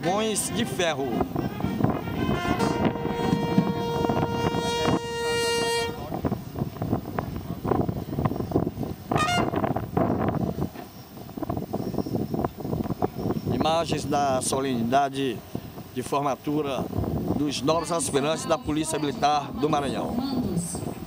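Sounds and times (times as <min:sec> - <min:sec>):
brass instrument long note: 0:00.1 - 0:06.4, 0:09.1 - 0:09.8.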